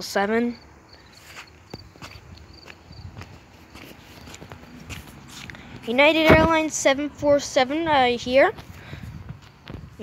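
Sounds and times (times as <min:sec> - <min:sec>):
crickets chirping: 0:00.0 - 0:04.9
footsteps on pavement: 0:01.0 - 0:10.0.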